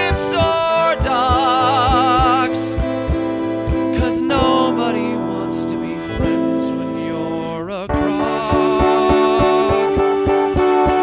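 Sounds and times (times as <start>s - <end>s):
held sung notes: 0.0s - 11.0s
plucked string accompaniment: 0.0s - 11.0s.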